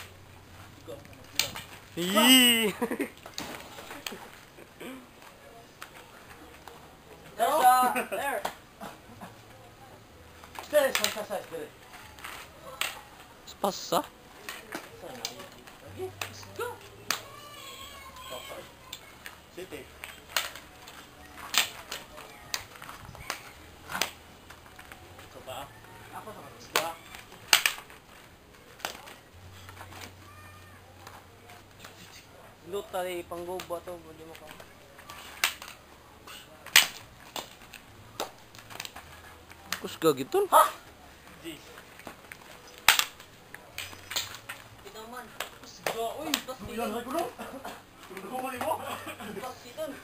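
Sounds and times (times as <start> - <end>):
fighting sticks clacking: 1.2 - 2.2, 10.5 - 11.4, 12.2 - 13.0, 14.4 - 17.4, 18.9 - 24.9, 26.6 - 28.0, 28.8 - 29.2, 34.3 - 39.1, 42.0 - 44.6
hand slap: 10.9 - 11.2, 36.7 - 37.5, 42.8 - 43.2.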